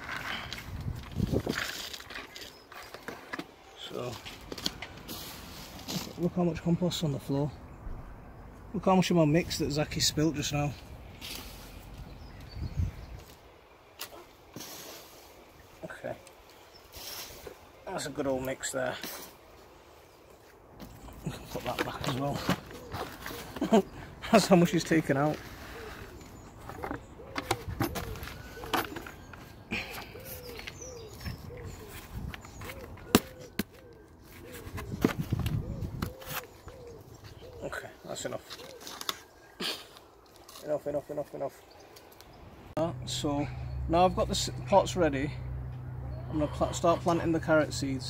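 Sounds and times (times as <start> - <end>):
hands handling compost: 0.0 - 7.5, 9.0 - 42.3.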